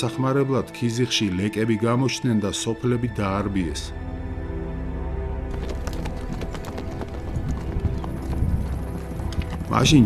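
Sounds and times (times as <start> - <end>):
background music: 0.0 - 10.0
horse hooves clopping on dirt: 5.5 - 10.0.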